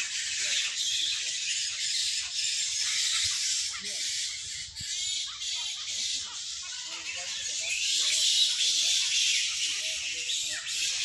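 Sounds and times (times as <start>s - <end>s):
birds calling: 0.0s - 11.0s.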